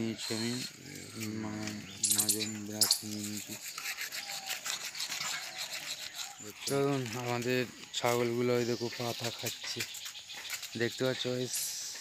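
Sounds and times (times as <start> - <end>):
toothbrush scrubbing teeth: 3.0 - 6.7.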